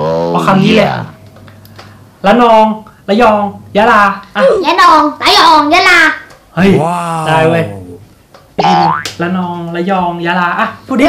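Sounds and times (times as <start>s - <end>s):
man speaking: 6.6s - 8.1s
person speaking: 6.6s - 8.1s.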